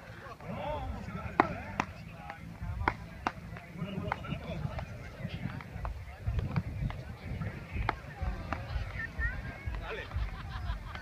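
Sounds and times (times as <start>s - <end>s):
paddles striking ball: 1.1s - 9.0s.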